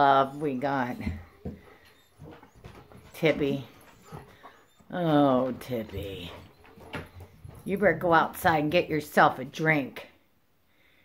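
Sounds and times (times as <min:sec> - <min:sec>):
dog whimpering: 0:00.0 - 0:08.1.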